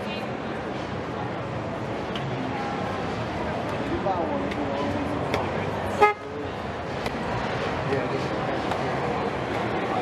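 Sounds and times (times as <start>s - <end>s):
crowd babble: 0.0s - 10.0s.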